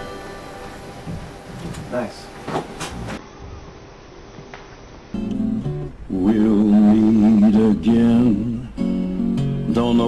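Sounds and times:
instrumental backing track with guitar: 0:05.2 - 0:10.0.

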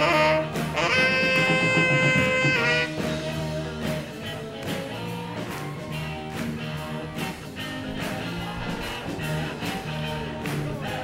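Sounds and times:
drum kit steady beat: 0:00.0 - 0:11.0
guitar: 0:00.0 - 0:11.0.

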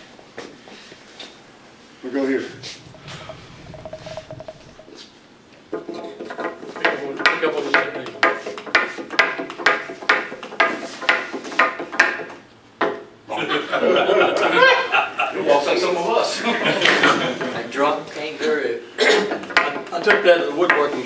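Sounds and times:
wooden toy feet clacking: 0:02.5 - 0:05.0.

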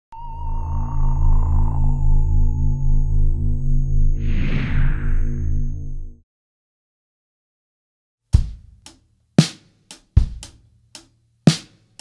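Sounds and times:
low pulsing drone: 0:00.1 - 0:06.2
wavering high synth tone: 0:00.1 - 0:06.2.

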